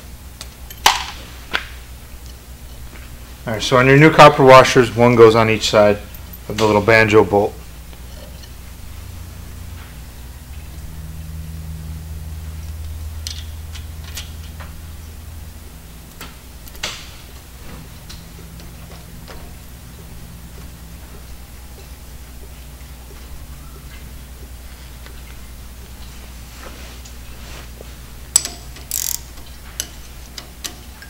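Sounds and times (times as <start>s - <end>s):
steady low hum: 0.0s - 31.0s
metal parts clicking and tapping: 28.3s - 31.0s.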